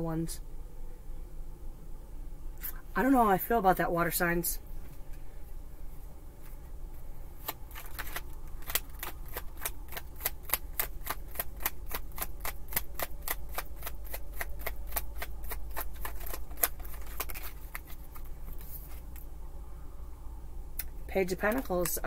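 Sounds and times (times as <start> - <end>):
cards being shuffled: 7.4 - 19.3.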